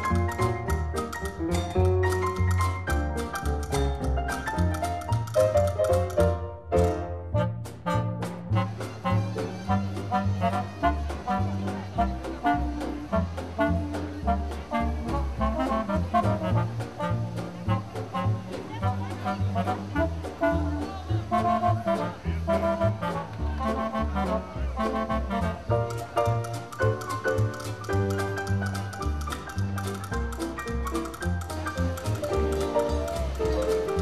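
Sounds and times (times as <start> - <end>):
upbeat swing music with brass: 0.0 - 34.0.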